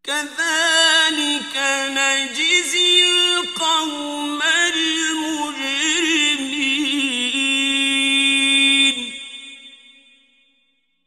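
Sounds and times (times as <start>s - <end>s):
man reciting in long note: 0.0s - 9.4s.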